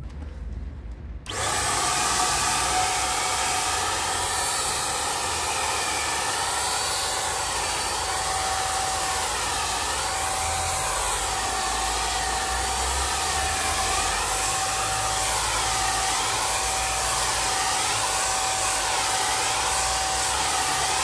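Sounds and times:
paint sprayer whirring hiss: 1.3s - 21.0s.

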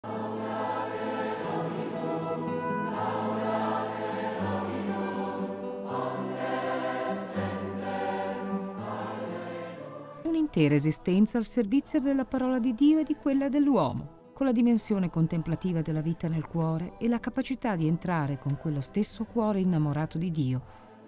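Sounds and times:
choir singing sustained chords: 0.0s - 21.0s.

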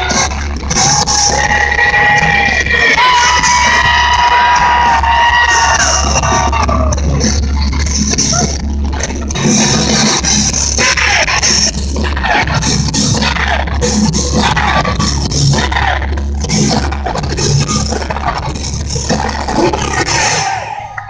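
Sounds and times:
heavy bass: 0.0s - 21.0s
metal band playing live: 0.0s - 21.0s.

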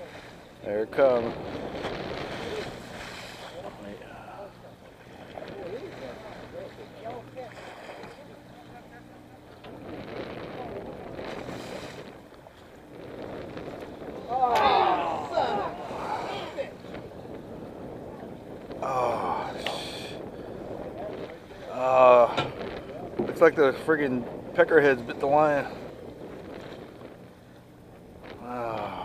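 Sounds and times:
low boat engine hum: 0.0s - 29.0s
sea noise: 0.0s - 29.0s
wind: 0.0s - 29.0s
people talking indistinctly: 14.3s - 16.8s.

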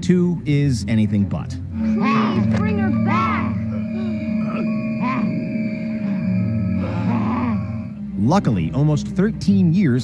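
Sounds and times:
eerie droning tones: 0.6s - 9.9s.

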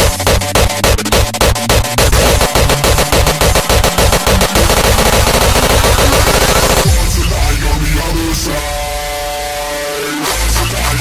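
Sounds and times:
hardcore electronic dance music: 0.0s - 11.0s
fast drum roll: 2.0s - 7.3s
sustained synth tone: 2.0s - 11.0s.

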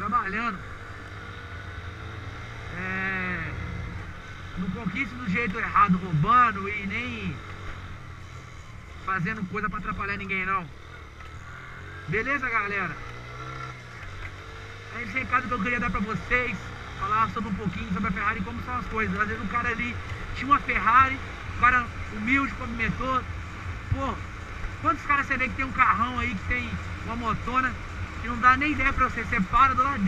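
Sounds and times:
motorcycle engine running: 0.0s - 30.0s
road noise: 0.0s - 30.0s.

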